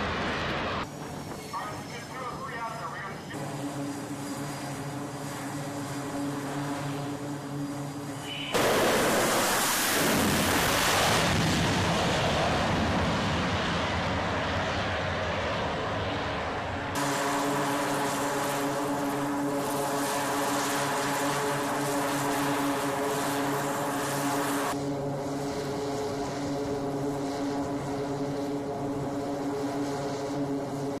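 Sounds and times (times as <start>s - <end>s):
turboprop engines droning: 0.0s - 31.0s
loud rushing noise: 8.5s - 20.4s.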